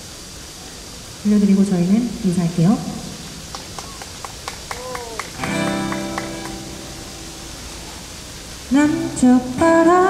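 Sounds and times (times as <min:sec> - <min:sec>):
acoustic guitar playing: 0:05.3 - 0:10.0.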